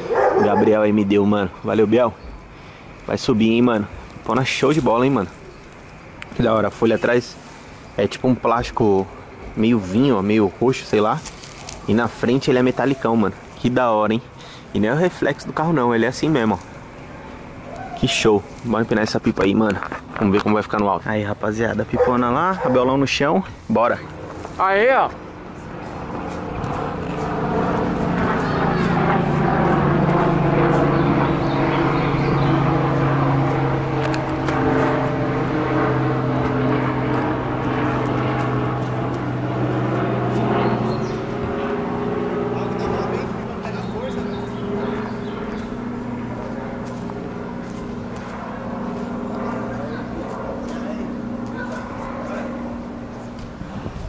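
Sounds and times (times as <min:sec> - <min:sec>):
droning multi-tone hum: 0:00.0 - 0:54.0.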